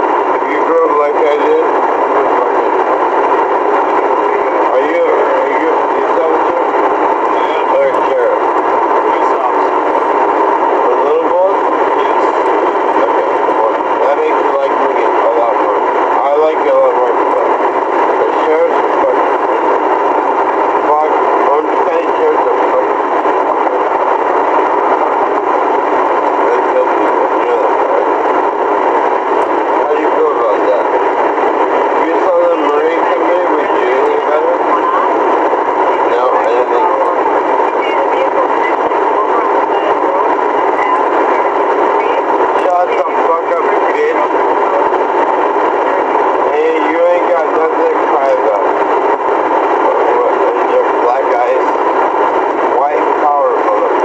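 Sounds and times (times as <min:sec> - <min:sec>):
steady loud hiss: 0:00.0 - 0:54.0.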